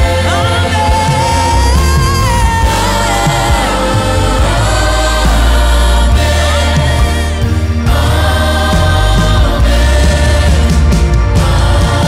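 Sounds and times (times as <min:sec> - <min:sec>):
keyboard and band playing: 0:00.0 - 0:12.0
women singing: 0:00.0 - 0:12.0.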